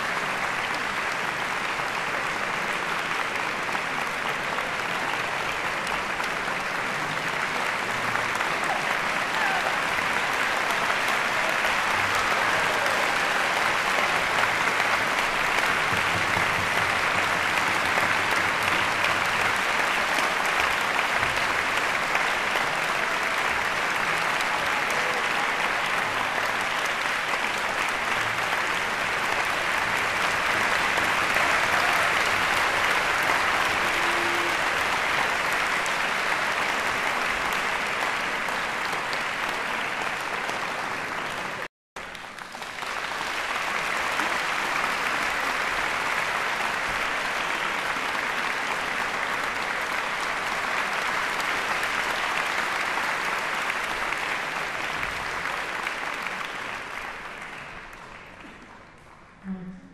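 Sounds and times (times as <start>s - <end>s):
audience applauding: 0.0s - 59.6s.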